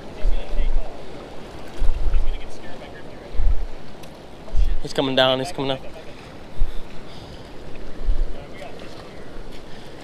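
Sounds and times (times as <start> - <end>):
wind buffeting microphone: 0.0 - 5.0, 6.1 - 10.0.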